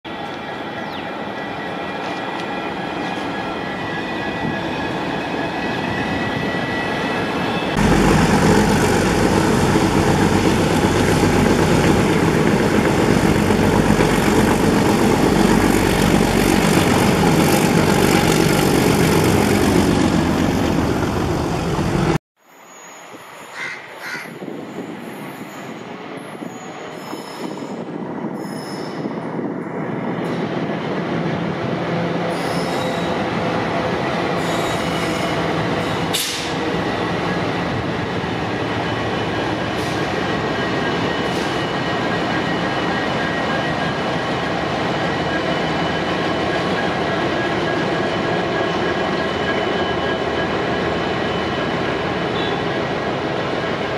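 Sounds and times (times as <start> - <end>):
diesel locomotive engine: 0.0 - 22.2, 24.4 - 53.9
train running noise: 0.1 - 22.2, 22.9 - 53.9.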